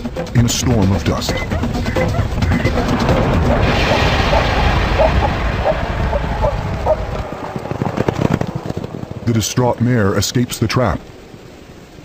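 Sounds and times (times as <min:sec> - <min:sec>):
low rumbling scuffle in dust: 0:01.4 - 0:11.5.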